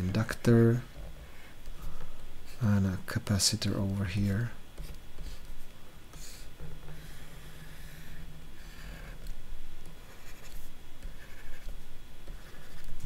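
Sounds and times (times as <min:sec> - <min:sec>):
stylus scratching on drawing tablet: 0:04.8 - 0:09.4, 0:10.0 - 0:13.0.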